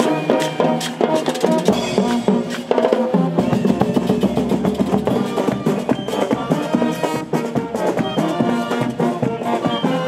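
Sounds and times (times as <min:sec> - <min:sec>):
marching band brass horns: 0:00.0 - 0:10.0
marching snare and tenor drums: 0:00.0 - 0:10.0.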